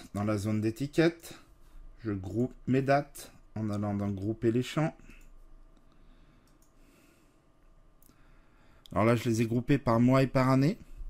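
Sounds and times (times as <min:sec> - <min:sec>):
faint computer mouse clicks: 0:05.1 - 0:06.8.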